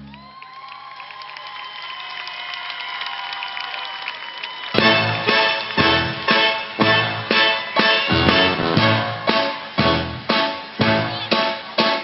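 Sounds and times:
audience applauding and cheering: 0:00.0 - 0:11.8
music with steady beat: 0:04.8 - 0:12.0
song backing track: 0:04.8 - 0:12.0.

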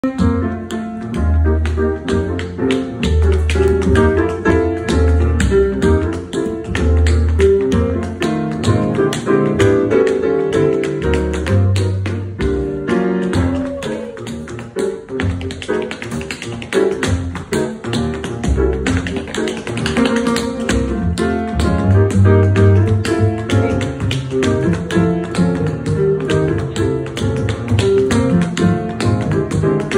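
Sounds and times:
acoustic piano: 0:00.0 - 0:29.9
tap dancing on wooden board: 0:00.1 - 0:29.9
upright bass: 0:20.4 - 0:28.8.

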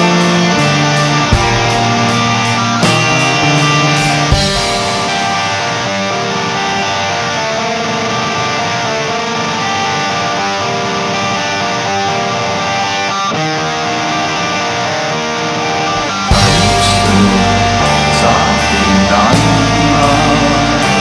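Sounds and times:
electric guitars strumming chords: 0:00.0 - 0:21.0.

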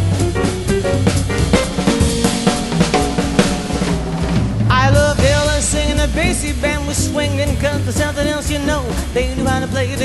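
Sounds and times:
snare and bass drum hits: 0:00.0 - 0:08.2
swing band held notes: 0:00.0 - 0:10.0.

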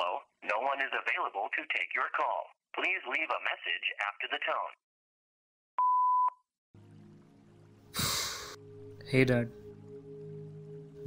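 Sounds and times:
voice talking over telephone: 0:00.0 - 0:04.8.

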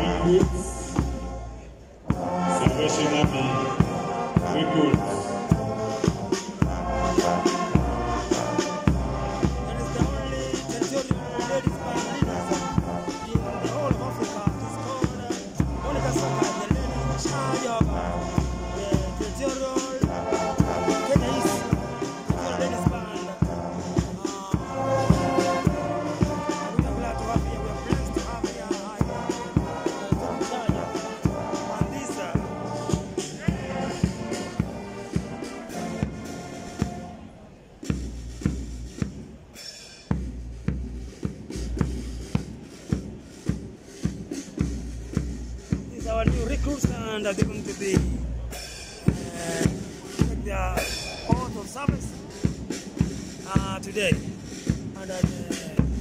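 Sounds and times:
bass and snare drum beat: 0:00.0 - 0:56.0
brass band playing a march: 0:00.0 - 0:56.0.

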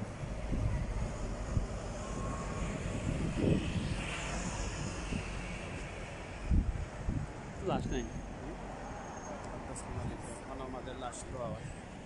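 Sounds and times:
vehicle passing close by: 0:00.0 - 0:11.0
engine rumble and road noise: 0:00.0 - 0:12.0.

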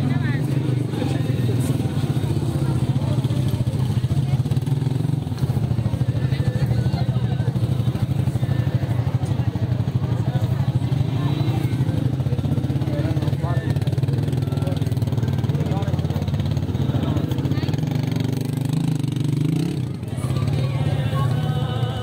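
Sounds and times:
crowd voices: 0:00.0 - 0:22.0
motorcycle engine running: 0:00.0 - 0:22.0.

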